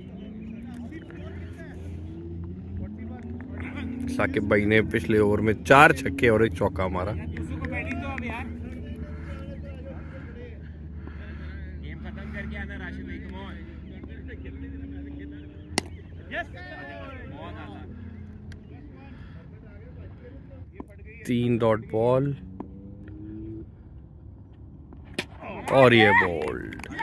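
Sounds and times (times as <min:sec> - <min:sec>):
distant voices calling: 0:00.0 - 0:27.0.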